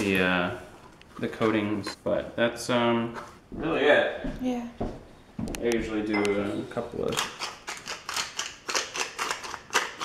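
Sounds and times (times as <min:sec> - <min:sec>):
pepper mill grinding: 0:07.0 - 0:10.0.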